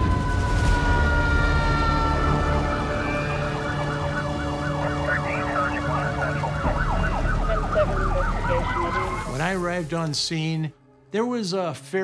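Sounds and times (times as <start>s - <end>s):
siren yelping: 0.0s - 9.9s.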